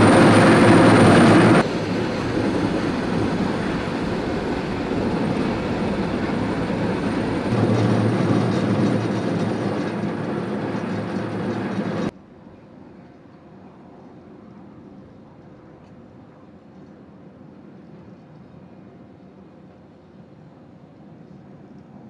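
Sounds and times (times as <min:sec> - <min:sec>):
diesel heavy equipment running: 0:00.0 - 0:12.1.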